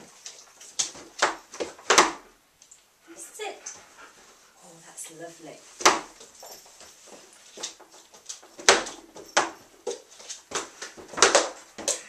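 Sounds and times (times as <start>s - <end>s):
dog paws tapping on wood: 0.0s - 4.4s, 5.1s - 12.0s.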